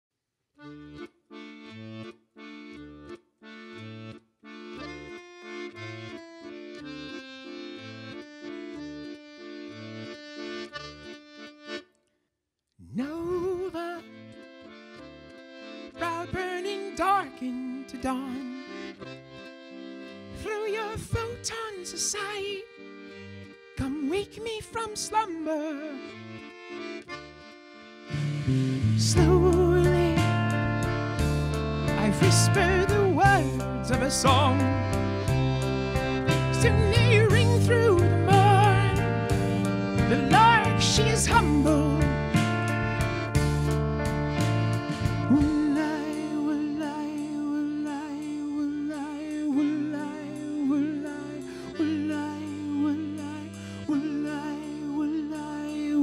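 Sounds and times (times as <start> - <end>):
accordion playing chords: 0.6 - 12.1, 12.8 - 56.0.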